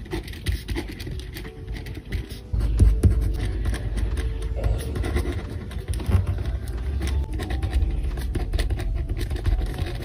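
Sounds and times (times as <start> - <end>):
pen scratching on paper: 0.0 - 10.0.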